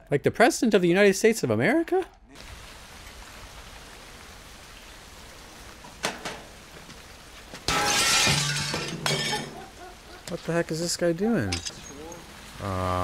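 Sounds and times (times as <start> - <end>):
steady rain falling: 2.0 - 13.0.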